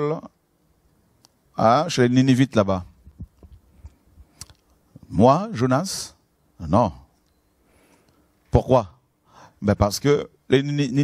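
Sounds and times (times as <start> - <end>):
microphone handling thuds: 2.9 - 4.3
microphone click: 3.0 - 4.7.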